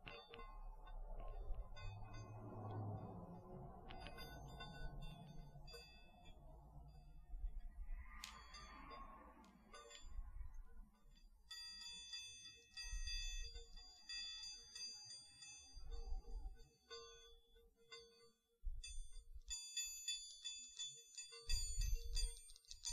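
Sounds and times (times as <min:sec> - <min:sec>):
bell-like chimes ringing: 0:00.0 - 0:22.8.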